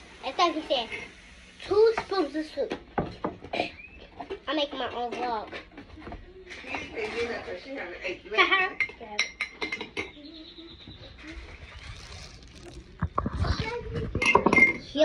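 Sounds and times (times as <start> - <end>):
young child's voice: 0.2 - 1.0, 1.6 - 2.8, 13.2 - 15.0
clinks of spoon and mugs: 8.8 - 10.2, 14.2 - 14.9.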